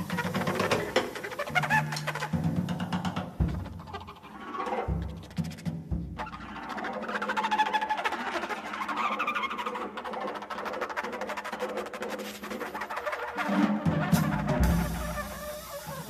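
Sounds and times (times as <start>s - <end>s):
deep drum strokes: 0.0s - 4.3s, 4.9s - 6.7s, 13.8s - 16.0s
rapid taps on drums and percussion: 0.0s - 7.1s, 10.6s - 16.0s.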